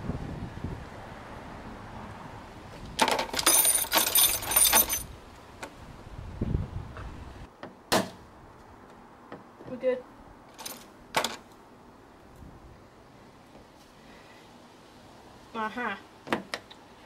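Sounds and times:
small metal parts clinking: 3.0s - 5.1s, 10.5s - 11.4s.

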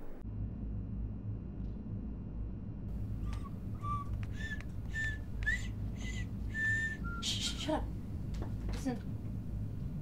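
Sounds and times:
person whistling: 3.2s - 7.4s.

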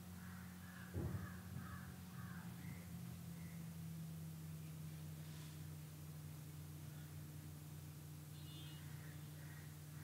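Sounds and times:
faint harsh bird calls: 0.0s - 3.8s, 8.2s - 10.0s
steady low hum: 0.0s - 10.0s
dull thump: 0.9s - 1.4s.

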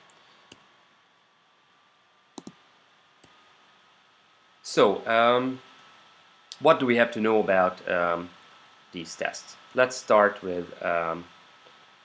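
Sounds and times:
computer mouse clicks: 2.4s - 2.6s.

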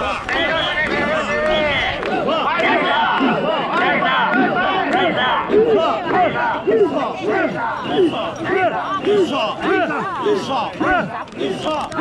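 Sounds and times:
crowd chanting in rhythm: 0.0s - 12.0s.

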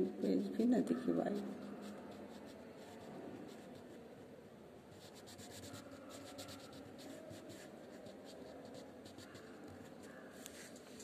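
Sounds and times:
crayon scratching on paper: 0.0s - 4.0s, 5.0s - 11.0s.

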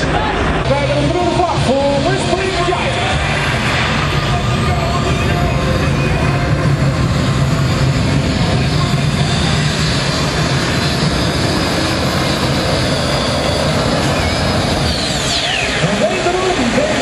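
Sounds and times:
high engine whine: 0.0s - 17.0s
tractor engine at full throttle: 0.0s - 17.0s.

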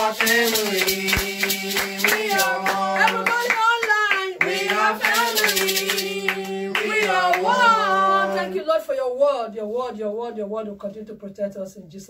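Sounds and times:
maraca shaking: 0.0s - 7.8s
woman singing a hymn: 0.0s - 8.9s.

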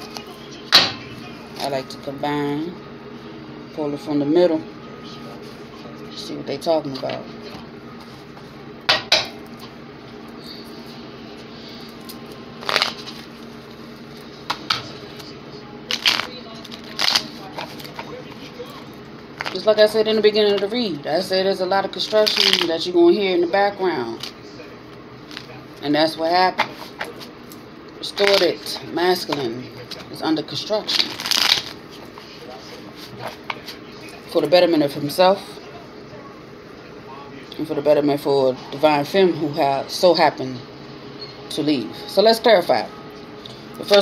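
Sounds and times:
steady machine hum: 0.0s - 44.0s
cards being shuffled: 12.6s - 13.4s, 22.1s - 22.7s, 28.2s - 28.6s, 30.8s - 32.3s.

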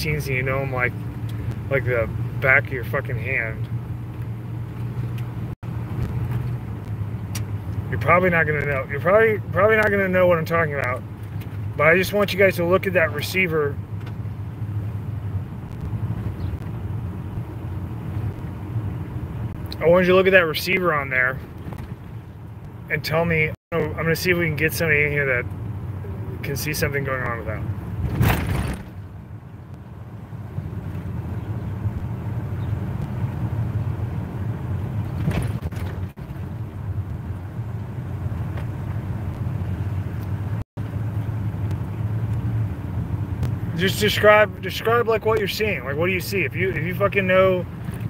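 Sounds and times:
car engine running: 0.0s - 48.0s.

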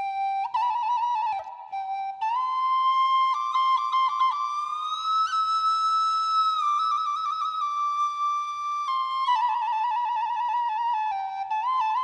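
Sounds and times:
solo flute melody: 0.0s - 12.0s.

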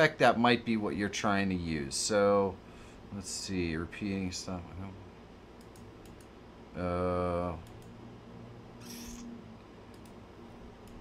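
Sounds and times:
room hum: 0.0s - 11.0s
computer mouse clicks: 5.6s - 6.3s, 7.6s - 8.0s, 8.8s - 9.3s, 9.9s - 10.2s.

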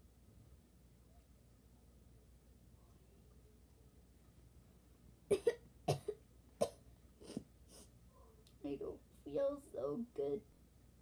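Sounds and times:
girl coughing: 5.3s - 7.4s.

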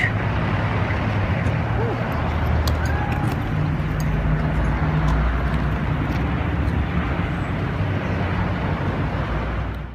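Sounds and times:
low engine hum: 0.0s - 9.9s
street traffic: 0.0s - 9.9s.

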